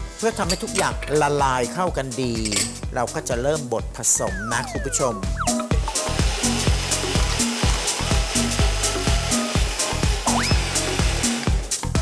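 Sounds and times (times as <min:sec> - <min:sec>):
background music with steady beat: 0:00.0 - 0:12.0
blender motor running: 0:05.8 - 0:11.7.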